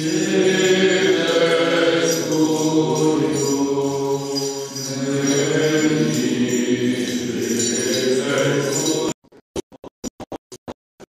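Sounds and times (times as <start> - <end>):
men chanting a hymn: 0.0 - 9.2.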